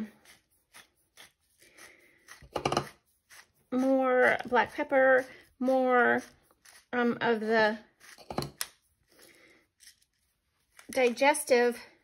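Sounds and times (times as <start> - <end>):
pepper mill grinding: 0.1 - 7.0, 8.0 - 11.4.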